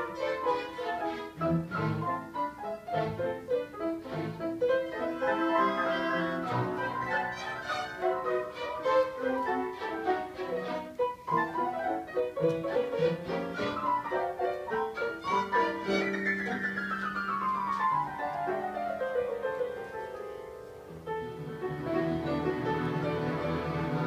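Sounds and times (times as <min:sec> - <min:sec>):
orchestra playing classical music: 0:00.0 - 0:20.0, 0:20.8 - 0:24.0
violins playing quick notes: 0:04.0 - 0:11.0, 0:12.7 - 0:14.2, 0:14.9 - 0:16.7.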